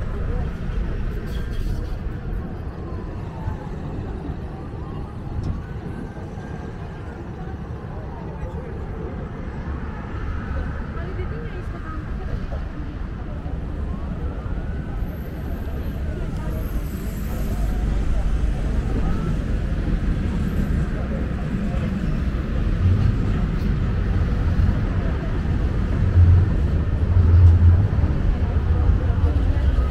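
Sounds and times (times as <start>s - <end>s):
people talking: 0.0s - 29.9s
road traffic rumbling: 0.0s - 29.9s.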